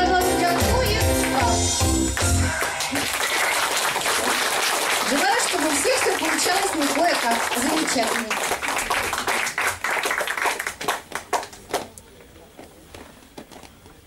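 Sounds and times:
audience applause: 2.2s - 12.0s.

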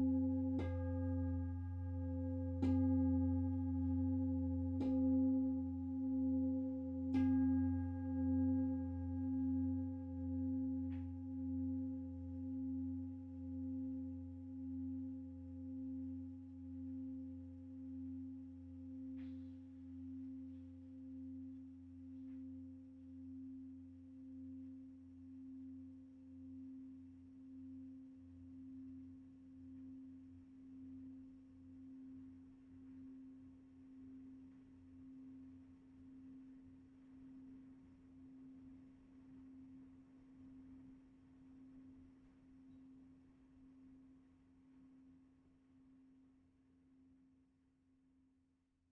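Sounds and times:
singing bowl ringing: 0.0s - 19.2s.

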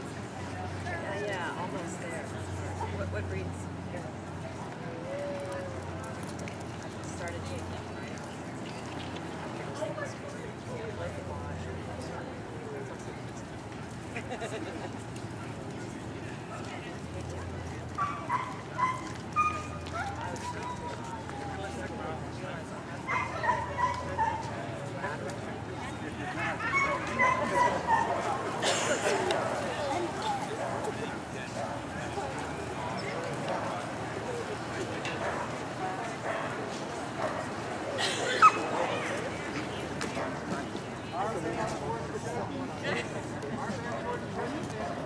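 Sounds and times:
background chatter: 0.0s - 45.0s
dog yipping: 18.0s - 21.0s, 38.3s - 38.7s.

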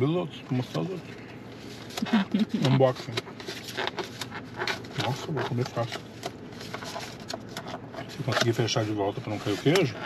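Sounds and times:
car cabin background noise: 0.0s - 10.0s.

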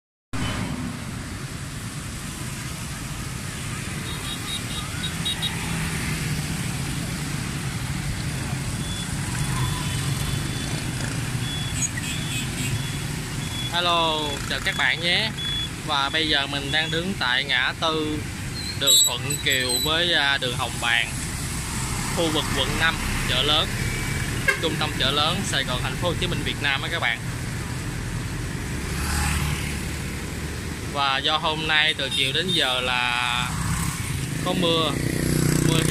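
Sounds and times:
vehicles passing: 0.4s - 35.9s
short high beeps: 8.8s - 10.8s, 11.4s - 13.8s, 15.3s - 15.8s
tyres hissing on wet road: 19.7s - 26.5s.

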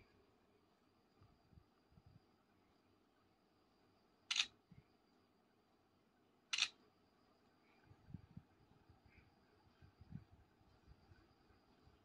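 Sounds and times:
smartphone camera shutter: 4.3s - 4.5s.

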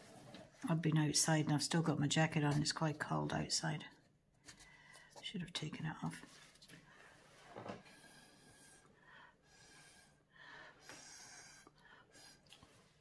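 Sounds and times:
faint puffs of breath: 6.8s - 13.0s.

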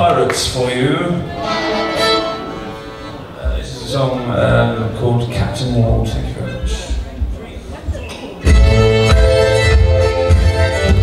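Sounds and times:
fiddle bowed long notes: 1.2s - 3.5s.

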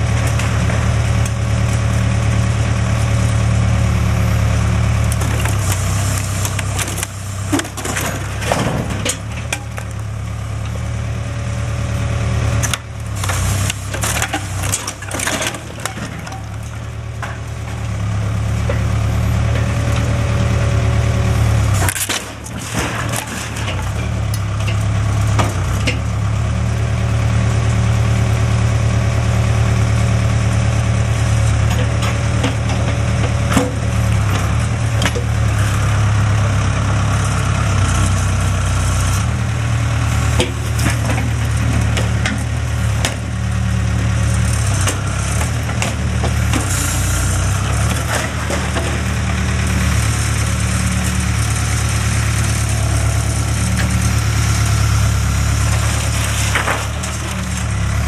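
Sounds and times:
diesel engine running under load: 0.0s - 58.0s
wood splintering and cracking: 5.0s - 10.7s, 12.5s - 20.5s, 21.6s - 26.1s, 31.1s - 36.4s, 40.0s - 58.0s.

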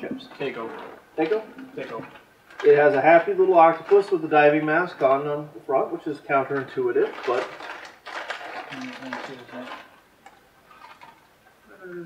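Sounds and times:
chip bag rustling: 0.3s - 4.6s, 6.9s - 10.0s.

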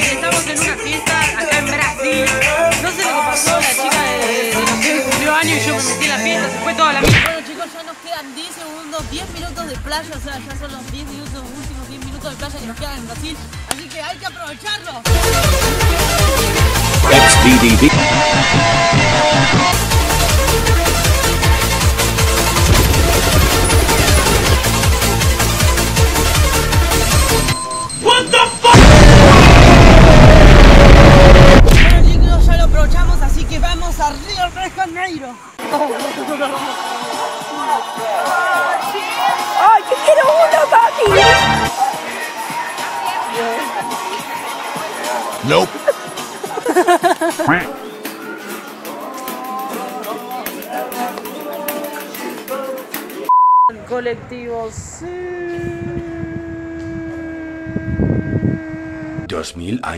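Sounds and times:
quick warbling voice-like sound: 17.0s - 17.9s
coach engine rumble: 21.4s - 26.8s
explosion with deep rumble: 22.6s - 25.0s, 28.8s - 34.3s
long steady tone: 56.0s - 59.3s.

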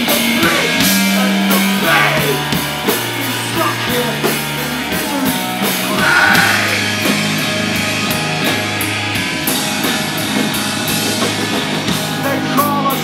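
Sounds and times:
bass guitar: 0.0s - 13.0s
distorted guitar: 0.0s - 13.0s
drum kit: 0.0s - 13.0s.

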